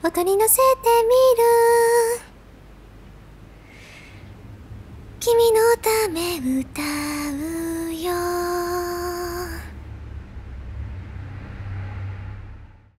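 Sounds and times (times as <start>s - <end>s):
woman singing: 0.0s - 2.3s, 5.2s - 9.8s
faint low hum: 0.0s - 13.0s.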